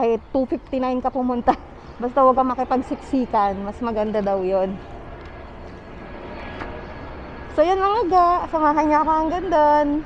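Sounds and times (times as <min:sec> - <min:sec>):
low outdoor rush: 0:00.0 - 0:10.0.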